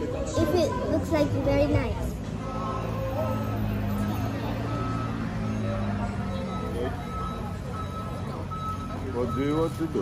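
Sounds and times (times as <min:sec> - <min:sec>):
traffic and idling engines: 0:00.0 - 0:10.0
faint high beep: 0:02.4 - 0:10.0.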